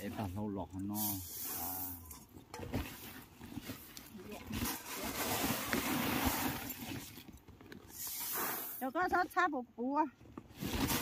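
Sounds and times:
plastic sacks rustling: 0.0s - 8.8s, 10.5s - 11.0s
rice grain pouring from metal basin: 0.9s - 2.0s.

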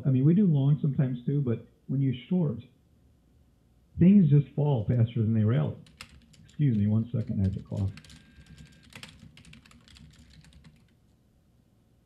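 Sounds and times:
keyboard typing: 5.8s - 11.0s.

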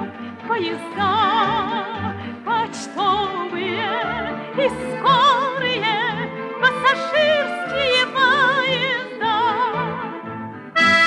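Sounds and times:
light orchestra accompaniment: 0.0s - 11.0s
woman singing with vibrato: 0.5s - 10.2s.

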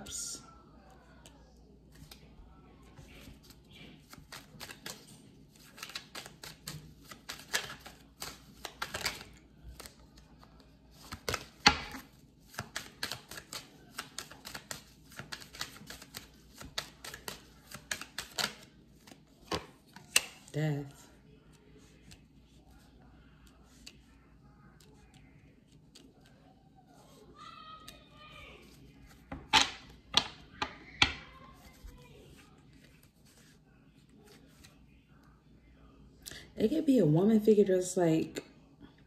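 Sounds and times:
cards being shuffled: 1.9s - 20.5s, 27.8s - 34.8s.

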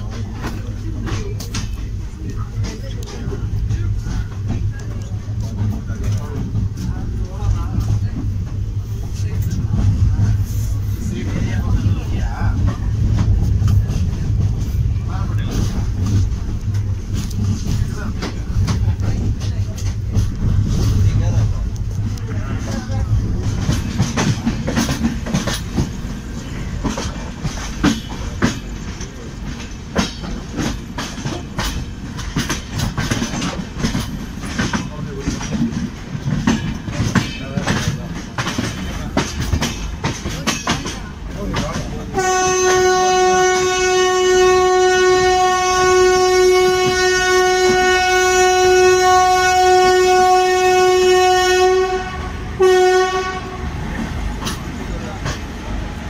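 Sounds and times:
train wheels clattering over rail joints: 0.0s - 51.9s, 52.6s - 56.0s
locomotive horn blast: 42.1s - 53.8s.

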